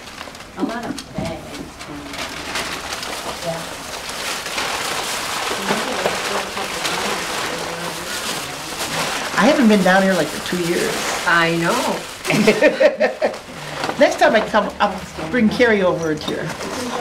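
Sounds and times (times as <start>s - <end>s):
tissue paper rustling: 0.0s - 17.0s.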